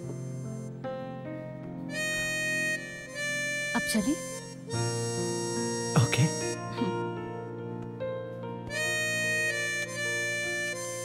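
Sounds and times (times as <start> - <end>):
slow reedy film score melody: 0.0 - 11.0.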